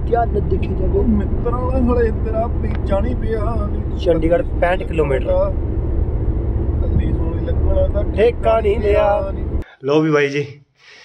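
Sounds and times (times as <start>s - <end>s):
voices talking: 0.0s - 5.6s, 6.8s - 10.6s
car road and engine rumble: 0.0s - 9.6s.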